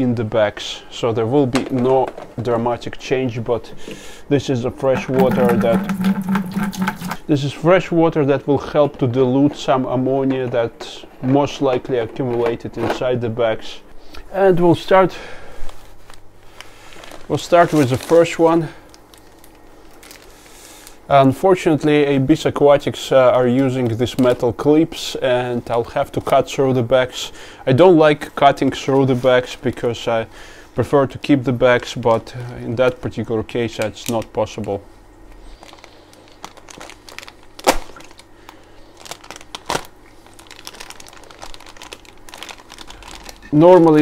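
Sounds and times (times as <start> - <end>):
plastic bag rustling and crinkling: 4.9 - 7.2, 15.8 - 20.9, 35.5 - 38.3, 38.9 - 44.0.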